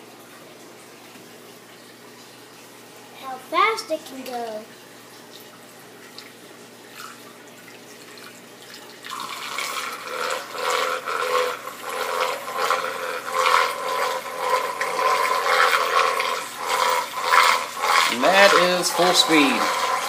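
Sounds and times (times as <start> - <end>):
churning water rush: 9.1 - 20.0.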